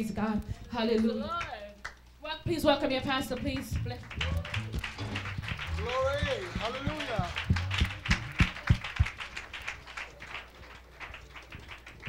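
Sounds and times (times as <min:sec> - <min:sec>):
congregation clapping in rhythm: 0:00.4 - 0:02.1, 0:02.9 - 0:12.0
deep thumps: 0:02.5 - 0:09.1.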